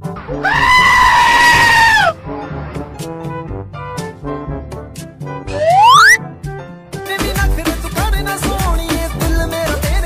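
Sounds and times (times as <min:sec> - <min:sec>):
background music: 0:00.0 - 0:10.0
loud high-pitched scream: 0:00.4 - 0:02.1.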